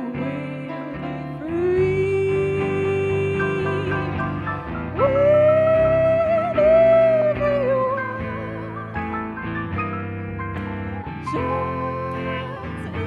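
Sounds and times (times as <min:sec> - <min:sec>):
person singing with vibrato: 0:00.0 - 0:09.4, 0:11.1 - 0:13.0
electric guitar: 0:00.0 - 0:13.0
upright bass: 0:00.0 - 0:13.0.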